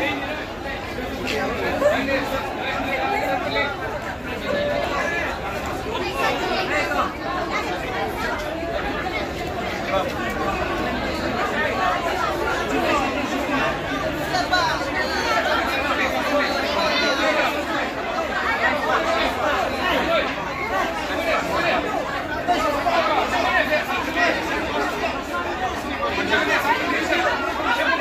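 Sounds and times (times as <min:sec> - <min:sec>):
crowd chatter: 0:00.0 - 0:28.0.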